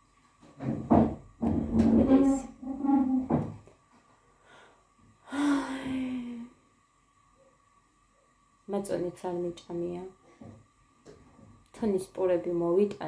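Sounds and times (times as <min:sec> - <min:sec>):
woman speaking: 0:01.8 - 0:03.4, 0:08.7 - 0:10.2, 0:11.7 - 0:13.0.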